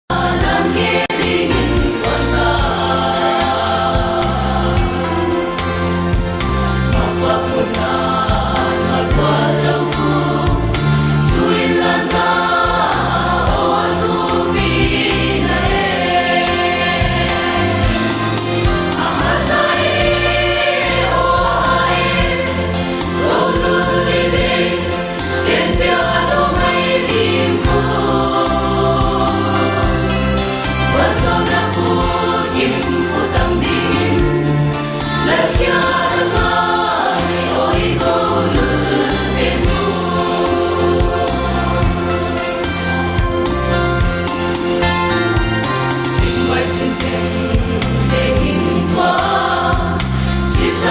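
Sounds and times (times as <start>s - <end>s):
mixed choir singing gospel: 0.1s - 50.9s.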